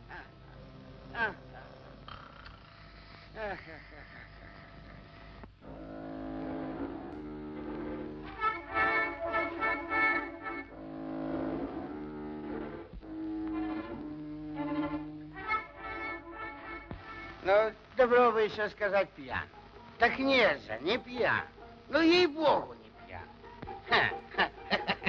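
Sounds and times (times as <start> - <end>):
orchestral strings: 5.6 - 25.0.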